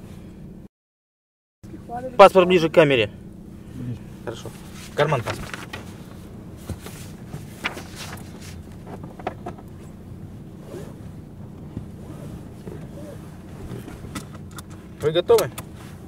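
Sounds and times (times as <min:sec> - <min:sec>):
car engine idling: 0:01.6 - 0:16.0
rustles and small clicks: 0:05.2 - 0:06.0, 0:06.6 - 0:09.8.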